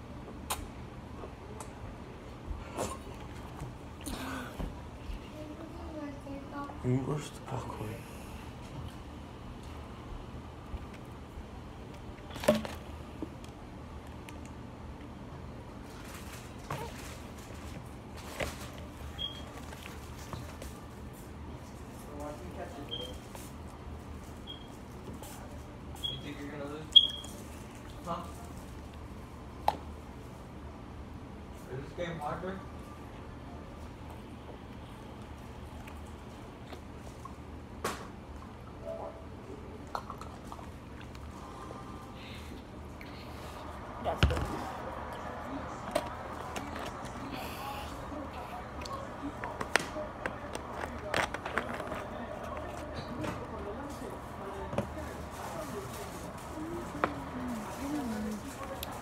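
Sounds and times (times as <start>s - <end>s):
steady low hum: 0.0s - 59.0s
faint voices talking: 41.3s - 59.0s.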